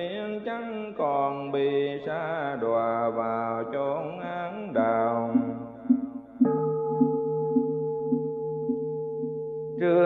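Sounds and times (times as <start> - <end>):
person chanting: 0.0 - 6.0, 9.8 - 10.0
soft beat: 4.8 - 9.8.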